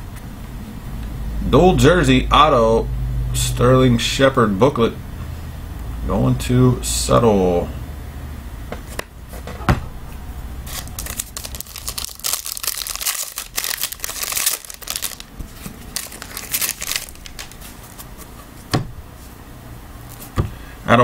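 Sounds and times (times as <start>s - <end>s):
foil wrapper crinkling and tearing: 10.6s - 18.1s.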